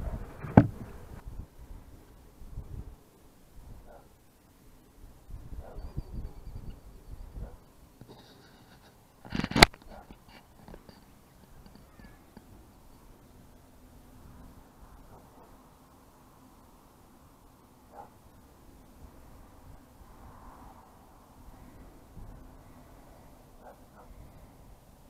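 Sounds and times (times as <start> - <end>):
fingers rubbing on camera: 8.0 - 12.5.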